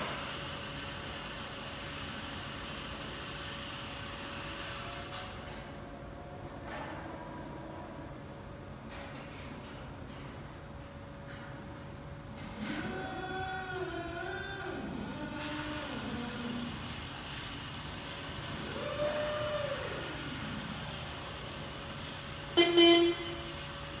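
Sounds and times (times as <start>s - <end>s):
electric motors whining: 12.5s - 24.0s
horn beep: 22.6s - 23.6s.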